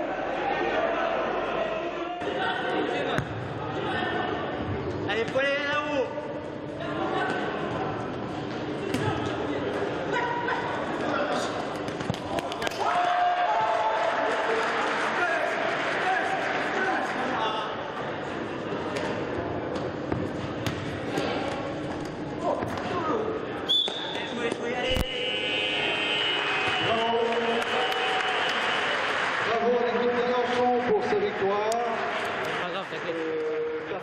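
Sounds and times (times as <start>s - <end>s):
ball being kicked and bouncing: 19.7s - 22.9s.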